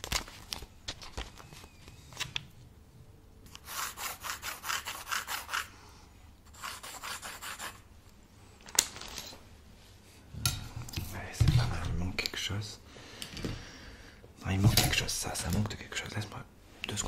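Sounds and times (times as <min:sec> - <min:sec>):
pencil scratching on notepad: 0:03.5 - 0:05.7, 0:06.5 - 0:07.8.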